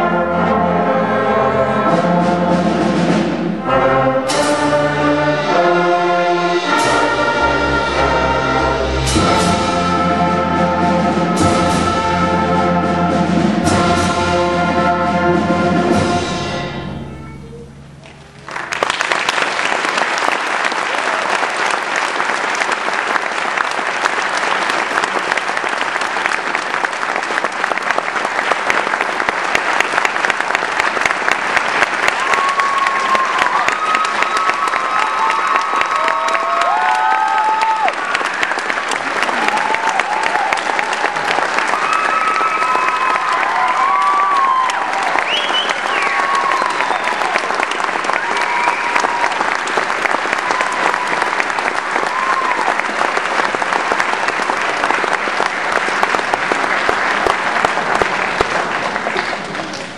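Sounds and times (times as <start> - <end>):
audience applauding: 18.0 - 59.9.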